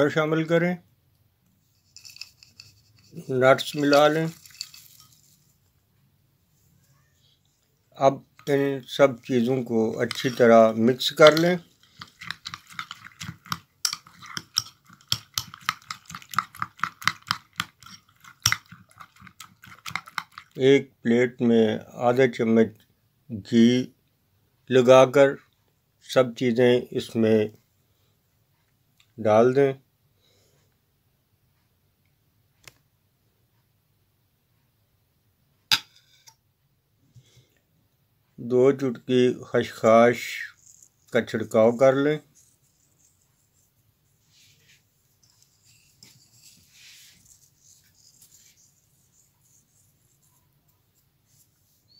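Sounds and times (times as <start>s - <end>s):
metal spoon beating mixture in bowl: 1.7s - 5.5s, 8.2s - 20.6s, 39.6s - 51.9s.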